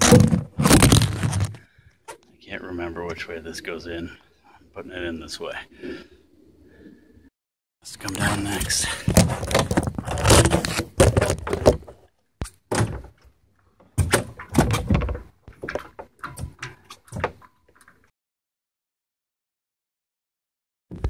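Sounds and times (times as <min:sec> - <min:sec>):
hollow knocks and clunks: 0:09.0 - 0:12.0, 0:12.7 - 0:18.0
rustling and handling knocks: 0:09.0 - 0:18.0.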